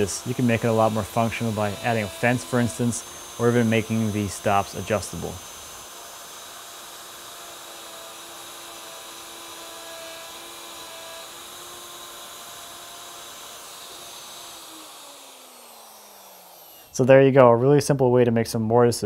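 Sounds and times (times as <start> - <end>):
router motor whining: 0.0 - 17.1.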